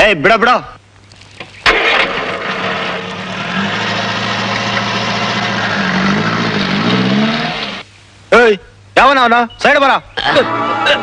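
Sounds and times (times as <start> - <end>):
diesel lorry engine revving: 1.7 - 7.8.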